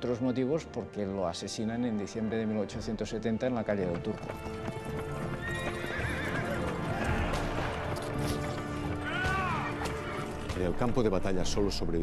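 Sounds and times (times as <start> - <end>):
horse hooves clip-clopping: 2.8 - 12.0
horse whinnying: 5.3 - 8.4.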